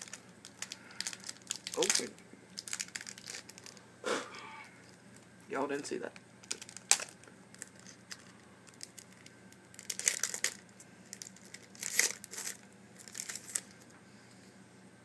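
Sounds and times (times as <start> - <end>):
foil wrapper crinkling and tearing: 0.0 - 3.8, 4.8 - 13.9.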